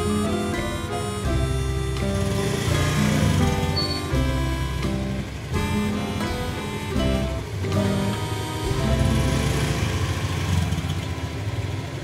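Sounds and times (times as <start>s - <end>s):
guitar music: 0.0s - 11.5s
scooter engine pulling away: 0.2s - 12.0s.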